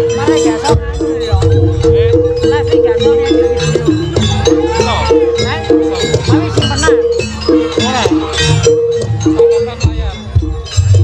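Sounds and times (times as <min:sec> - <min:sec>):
drums: 0:00.0 - 0:11.0
gong-chimes struck in rhythm: 0:00.0 - 0:11.0.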